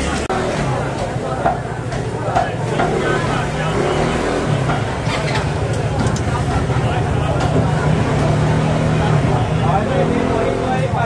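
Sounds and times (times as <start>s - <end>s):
market voices: 0.0s - 11.0s.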